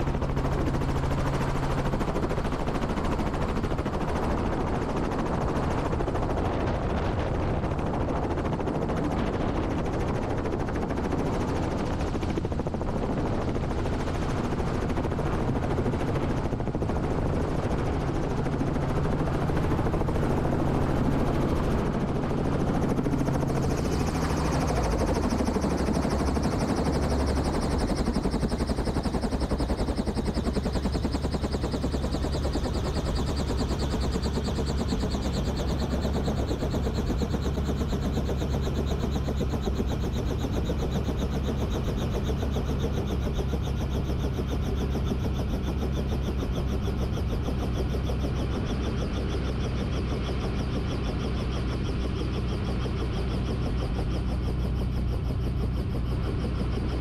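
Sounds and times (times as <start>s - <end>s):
helicopter rotor chopping: 0.0s - 57.0s.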